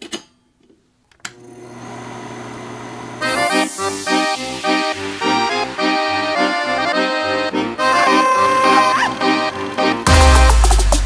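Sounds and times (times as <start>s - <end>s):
film projector motor humming: 1.3s - 3.4s.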